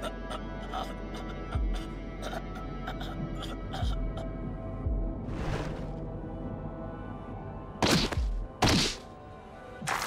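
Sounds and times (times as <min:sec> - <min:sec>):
dark background music: 0:00.0 - 0:10.0.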